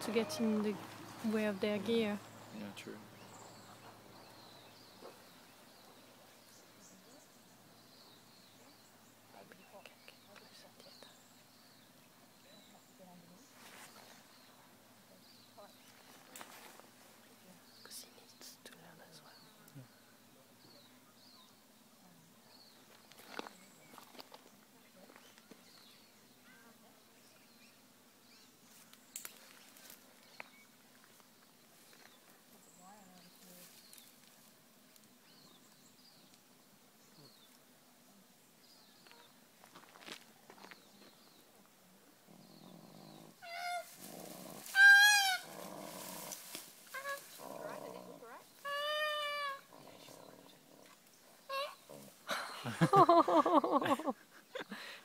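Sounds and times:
koala squealing: 44.7 - 45.5, 48.6 - 49.7.

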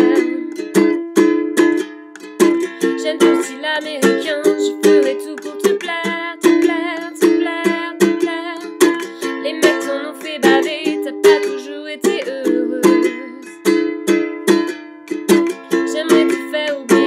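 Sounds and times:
woman singing: 0.0 - 1.0, 2.6 - 13.8, 15.5 - 17.0
ukulele strumming: 0.0 - 17.0.

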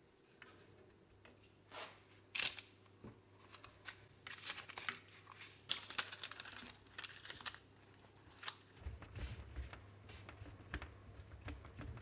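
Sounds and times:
baking paper crinkling: 3.4 - 12.0.

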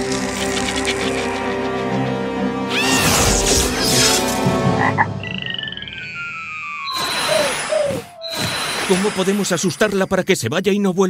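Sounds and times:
warbling high tone: 5.2 - 9.5
falling whistle-like glide: 5.4 - 8.4.

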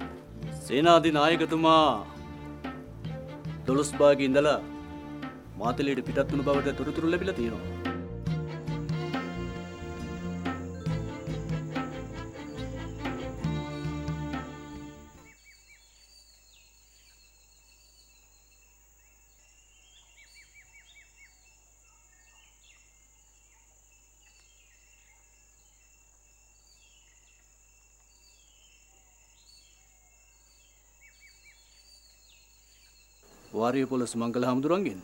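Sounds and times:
small birds chirping: 15.0 - 35.0.

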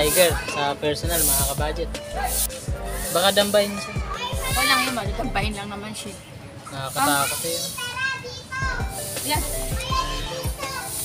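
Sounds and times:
background music with beat: 0.0 - 5.6, 8.6 - 11.0
children shouting: 7.4 - 9.0, 9.7 - 11.0.

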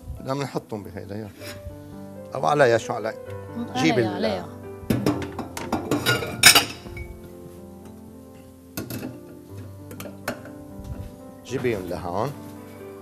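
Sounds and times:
background music: 0.0 - 13.0
kitchenware clinking: 4.9 - 7.2, 8.8 - 10.6.

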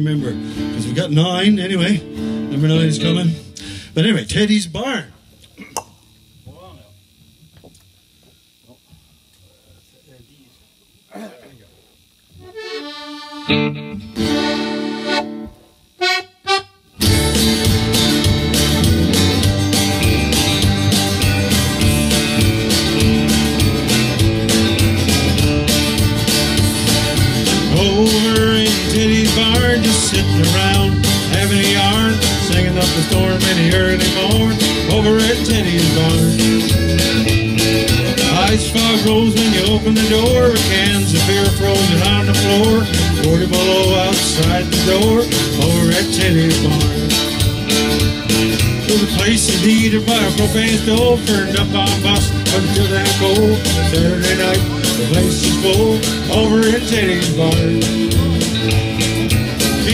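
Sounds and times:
acoustic guitar: 0.0 - 4.4, 12.4 - 59.9
electric bass: 0.0 - 6.9, 16.9 - 59.9
button accordion: 12.3 - 59.9
held chords: 12.4 - 59.9.

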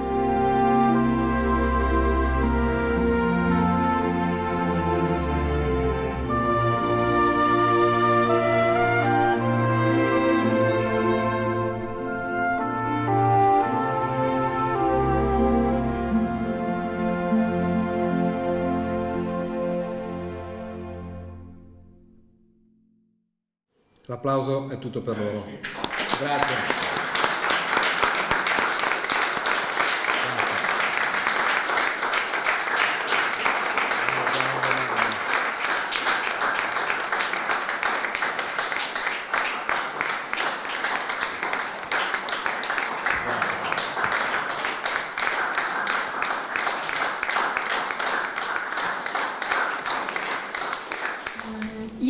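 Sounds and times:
audience applauding: 25.6 - 52.0.

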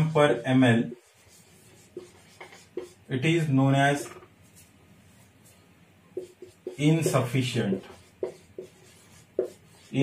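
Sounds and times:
marker writing on whiteboard: 0.0 - 3.1, 6.2 - 10.0.

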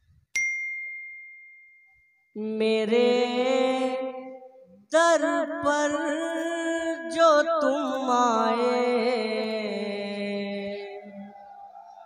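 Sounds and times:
high bell ding: 0.4 - 2.4.

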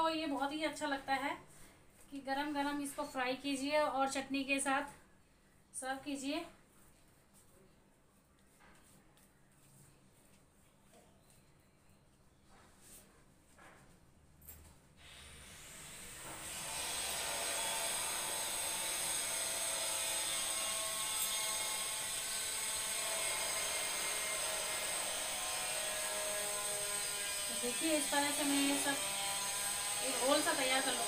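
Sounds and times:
faint rubbing and light touches: 6.6 - 14.1.

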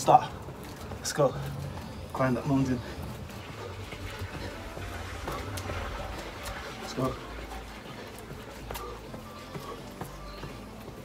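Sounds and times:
man breathing hard: 2.7 - 10.9.

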